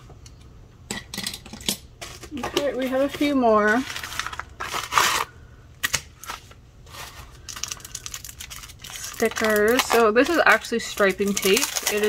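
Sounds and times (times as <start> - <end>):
paper and plastic packaging crinkling: 2.0 - 12.0.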